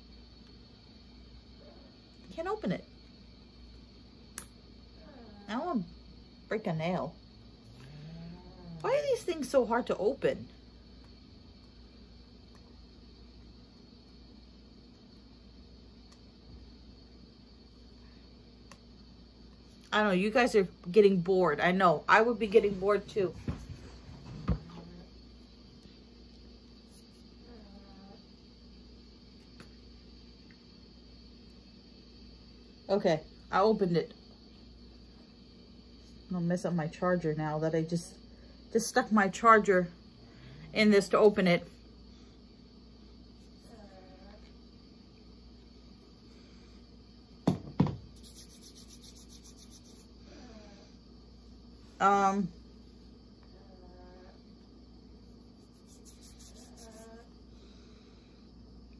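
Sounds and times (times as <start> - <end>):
faint low hum: 0.0 - 58.9
small click: 4.4 - 4.6
hands rubbing lotion: 48.1 - 50.1, 55.4 - 57.0.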